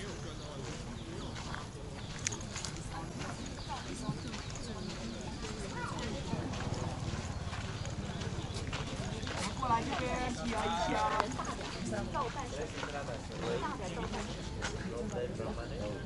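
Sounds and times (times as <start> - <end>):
footsteps on dirt path: 0.0 - 16.0
indistinct chatter: 0.0 - 16.0.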